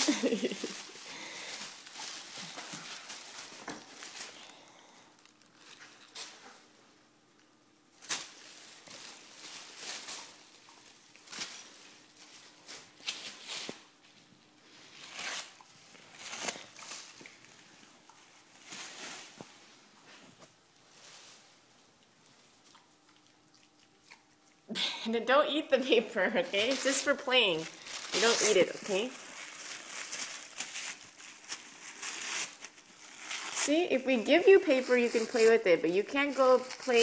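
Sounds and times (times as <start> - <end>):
tissue paper crinkling and tearing: 0.0 - 6.8, 7.9 - 19.6, 25.7 - 37.0.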